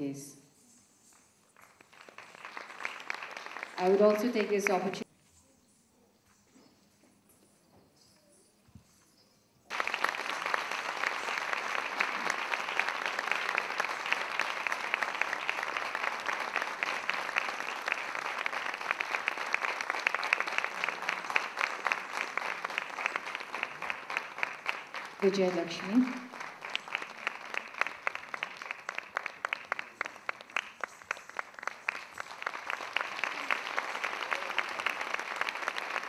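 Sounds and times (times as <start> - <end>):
audience applause: 1.6 - 5.0, 9.7 - 36.0.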